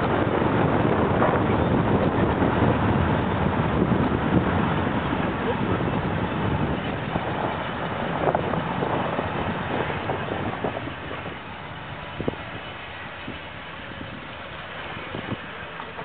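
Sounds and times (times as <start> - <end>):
low outdoor rumble: 0.0 - 16.0
wind buffeting microphone: 0.0 - 16.0.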